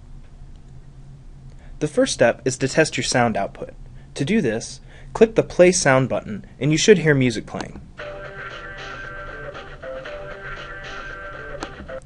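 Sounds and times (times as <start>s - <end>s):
short music test sound: 8.0s - 12.0s.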